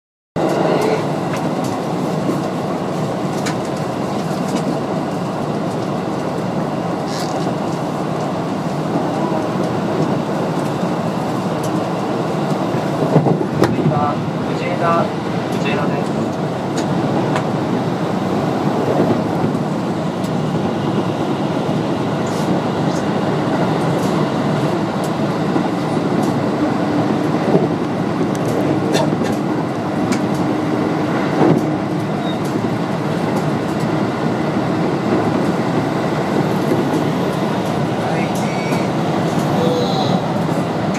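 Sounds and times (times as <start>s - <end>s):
train wheels rumbling: 0.4s - 40.9s.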